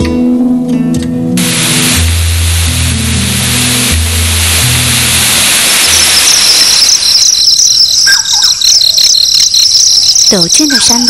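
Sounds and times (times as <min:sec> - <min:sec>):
rushing waterfall: 0:01.4 - 0:06.8
insect chorus: 0:05.8 - 0:11.0
birds chirping: 0:05.9 - 0:11.0.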